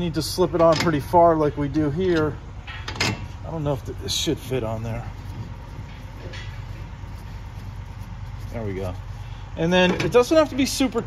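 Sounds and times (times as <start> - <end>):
shop background hum and rumble: 0.0 - 11.0.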